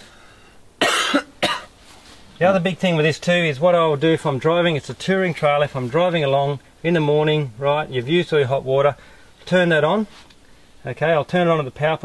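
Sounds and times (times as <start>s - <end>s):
man coughing: 0.8s - 1.8s.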